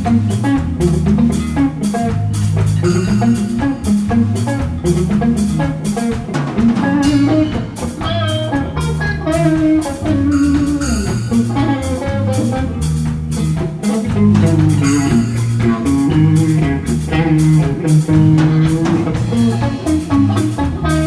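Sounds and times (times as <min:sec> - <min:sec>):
bass guitar: 0:00.0 - 0:21.0
drum kit beat: 0:00.0 - 0:21.0
electric guitar: 0:00.0 - 0:21.0.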